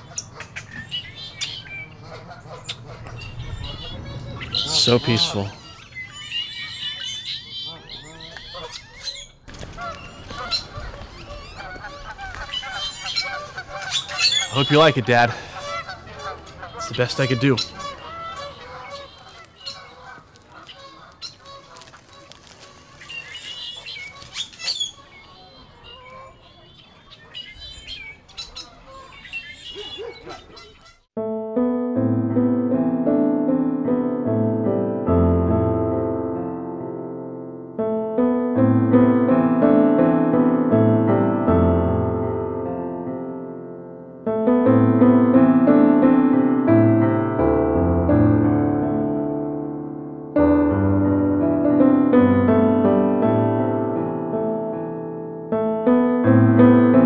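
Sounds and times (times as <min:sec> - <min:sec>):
birds calling: 0:00.0 - 0:31.1
solo piano chords: 0:01.1 - 0:08.0, 0:31.2 - 0:57.0.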